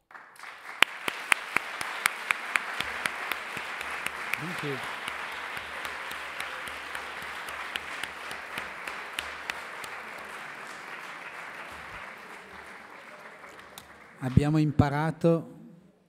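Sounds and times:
audience applauding: 0:00.0 - 0:14.7.

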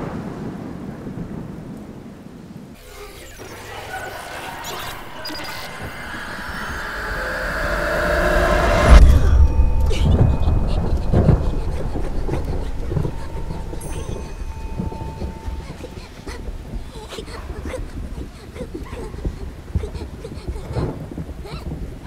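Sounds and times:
loud hit: 0:02.8 - 0:16.0
thin electronic tone: 0:02.8 - 0:16.4
noisy swell: 0:02.8 - 0:16.7
deep rumble: 0:02.8 - 0:18.8.

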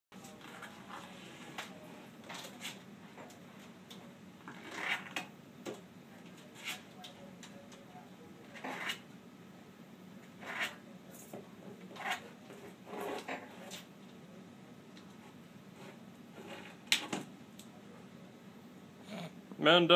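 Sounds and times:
turtle claws scraping cardboard: 0:04.5 - 0:05.2, 0:08.6 - 0:09.0, 0:10.4 - 0:10.8, 0:11.9 - 0:13.9.

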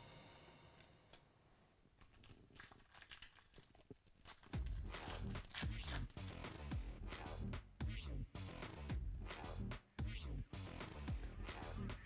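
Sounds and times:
wrapper tearing and crinkling: 0:02.0 - 0:06.2.

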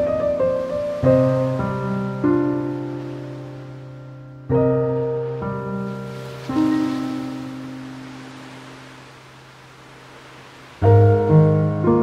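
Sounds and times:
soft piano chord: 0:00.0 - 0:09.0, 0:10.8 - 0:12.0
faint steady hiss: 0:00.0 - 0:12.0.

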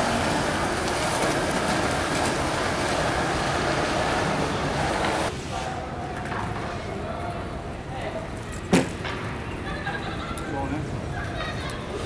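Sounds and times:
skate wheels rolling on concrete: 0:00.0 - 0:07.1.

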